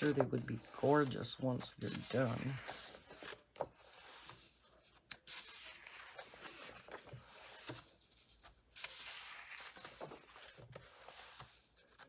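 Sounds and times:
paper page rustling: 0.0 - 12.0.

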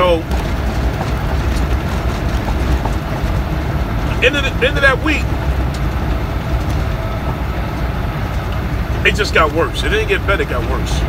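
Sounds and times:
faint ticks and rattles: 0.0 - 10.7
truck engine rumbling: 0.0 - 11.0.

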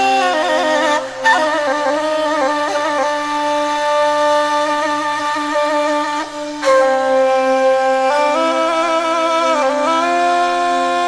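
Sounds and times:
wind instrument long note: 0.0 - 11.0.

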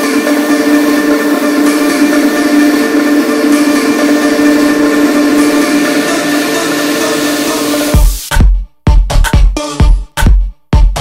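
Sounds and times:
sustained synth chord: 0.0 - 8.1.

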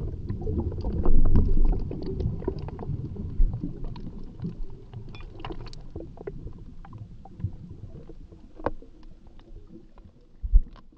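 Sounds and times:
low underwater rumble: 0.0 - 10.9
small clicks and bubble pops: 0.0 - 10.9.

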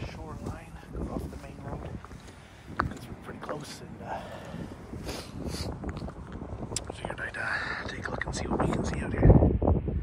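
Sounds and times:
wind buffeting microphone: 0.0 - 10.0
breathy whispering voice: 7.1 - 8.6.

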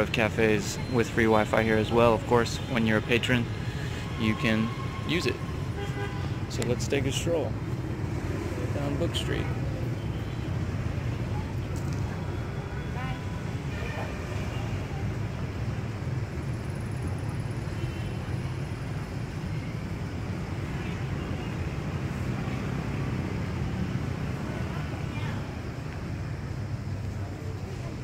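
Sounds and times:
low rumble of traffic: 0.0 - 28.0
voices of passers-by: 0.0 - 28.0.

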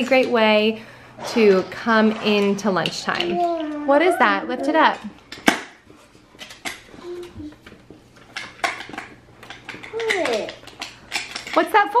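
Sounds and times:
small objects clicking in wooden tray: 8.3 - 12.0.

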